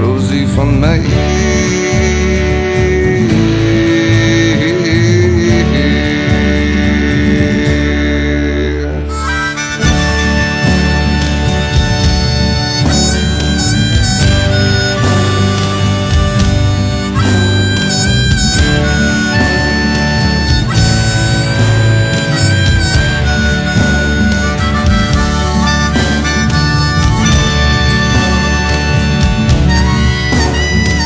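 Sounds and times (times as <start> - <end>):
bending lead melody: 0.0 - 31.0
double bass: 0.0 - 31.0
drum kit: 0.0 - 31.0.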